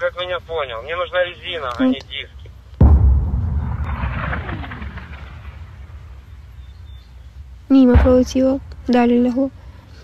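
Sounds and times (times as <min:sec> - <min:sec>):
explosion rumble: 0:02.8 - 0:09.7.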